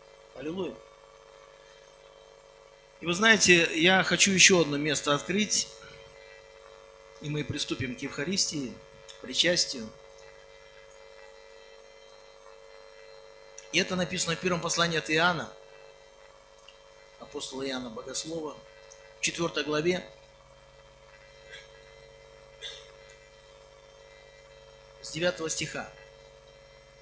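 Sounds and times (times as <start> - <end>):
faint electrical hum: 0.0 - 27.0.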